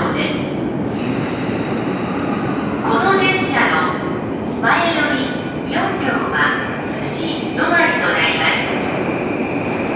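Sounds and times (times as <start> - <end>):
electric train running noise: 0.8 - 4.3.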